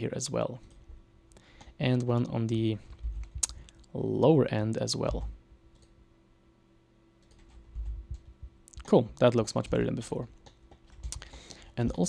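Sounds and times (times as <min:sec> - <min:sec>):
faint steady hum: 0:00.0 - 0:12.0
person speaking: 0:01.8 - 0:05.4, 0:08.7 - 0:10.4, 0:11.0 - 0:12.0
computer keyboard and mouse clicks: 0:07.2 - 0:11.6.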